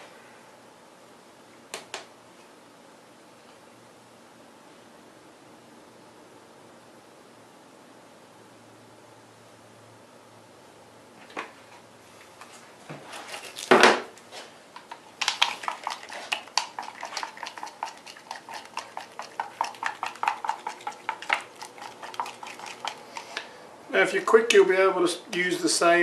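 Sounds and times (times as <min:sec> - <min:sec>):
stirrer scraping in cup: 0:14.9 - 0:23.5.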